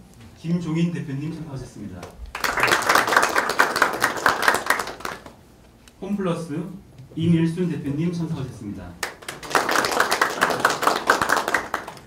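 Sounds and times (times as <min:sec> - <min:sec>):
group applauding: 0:02.3 - 0:05.4, 0:09.0 - 0:12.0.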